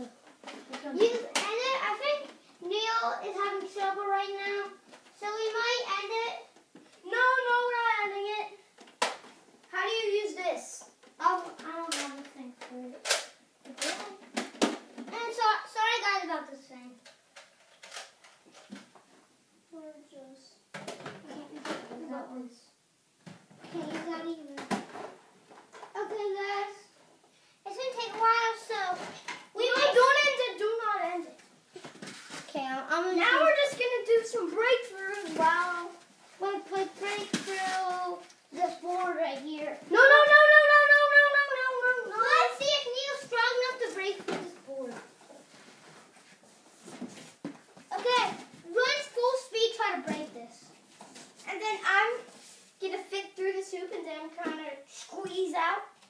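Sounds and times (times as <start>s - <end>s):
children talking and calling: 0.0s - 17.2s, 19.7s - 22.8s, 23.6s - 27.0s, 27.6s - 45.6s, 47.9s - 56.0s.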